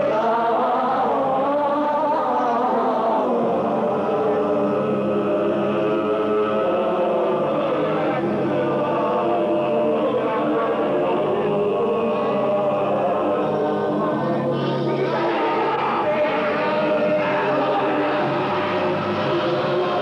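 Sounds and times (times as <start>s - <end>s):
choir-like chanting voices: 0.0s - 20.0s
man singing into a microphone: 7.3s - 20.0s.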